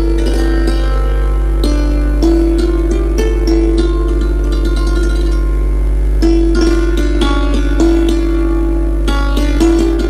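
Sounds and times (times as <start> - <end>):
hammered dulcimer ringing notes: 0.0 - 10.0
steady low hum: 0.0 - 10.0.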